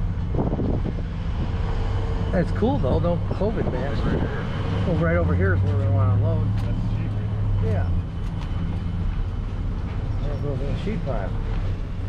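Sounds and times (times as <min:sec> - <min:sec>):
truck engine low drone: 0:00.0 - 0:12.0.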